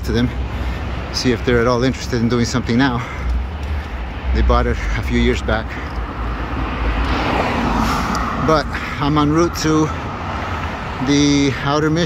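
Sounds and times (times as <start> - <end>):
low rumble of traffic: 0.0 - 12.0
car driving past: 6.0 - 11.0.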